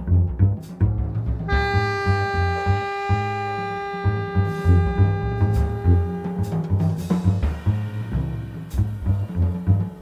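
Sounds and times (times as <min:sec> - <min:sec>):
double bass notes: 0:00.0 - 0:10.0
tenor saxophone long note: 0:01.5 - 0:07.0.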